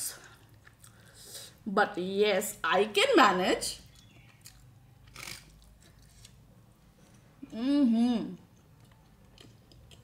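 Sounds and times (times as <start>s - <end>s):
chewing food: 8.4s - 10.0s.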